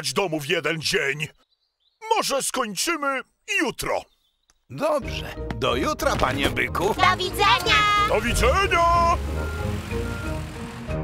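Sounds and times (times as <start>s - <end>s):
cartoon car engine puttering: 7.5s - 11.0s.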